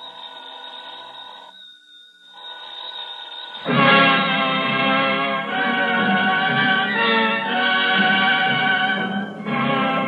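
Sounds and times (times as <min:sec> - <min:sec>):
high ringing tones: 0:00.0 - 0:04.5.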